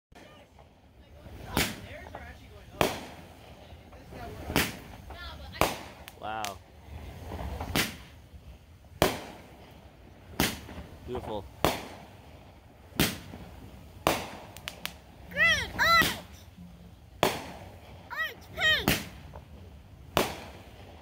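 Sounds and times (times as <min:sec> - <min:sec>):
fireworks bursting: 0:00.2 - 0:21.0.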